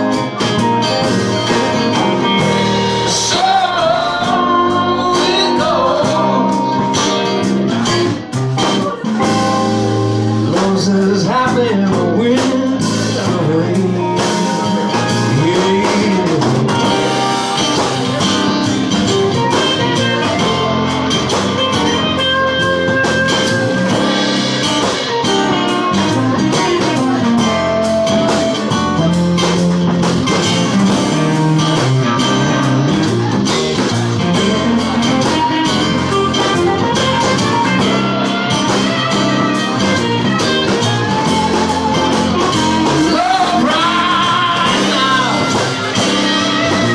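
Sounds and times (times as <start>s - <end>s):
acoustic guitars strummed and picked: 0.0s - 46.9s
steady drum beat: 0.0s - 46.9s.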